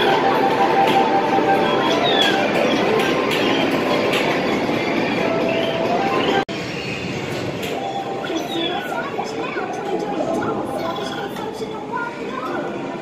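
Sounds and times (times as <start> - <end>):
arcade machine beeps: 0.0 - 7.1, 7.8 - 9.0
hubbub of voices: 7.6 - 13.0.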